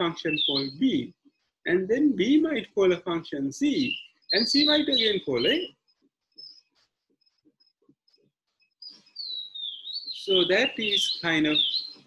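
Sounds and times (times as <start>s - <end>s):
bird singing: 0.0s - 7.7s, 8.6s - 12.0s.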